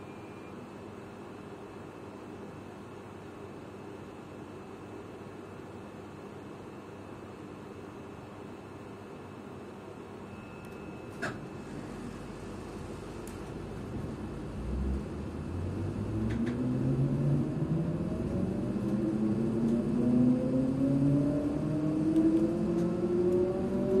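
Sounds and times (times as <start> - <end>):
train motors whining: 14.6 - 24.0.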